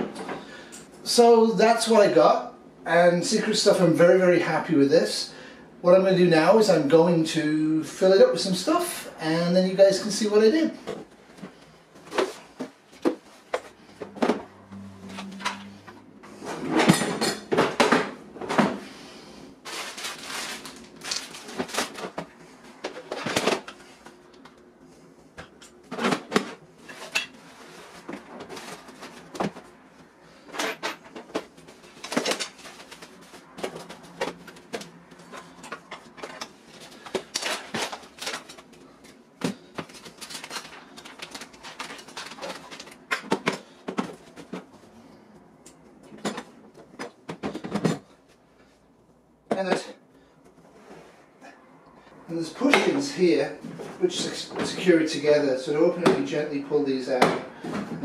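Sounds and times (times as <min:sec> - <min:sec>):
packaging rustling: 0:19.6 - 0:23.8, 0:31.6 - 0:43.2.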